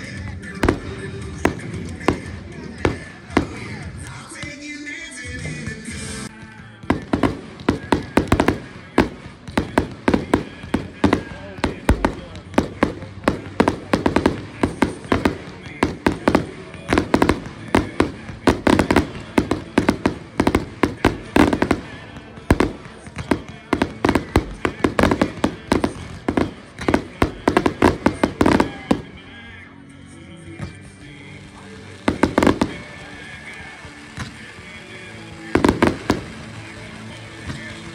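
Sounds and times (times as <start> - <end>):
fireworks bursting: 0.0 - 29.6, 30.7 - 37.9.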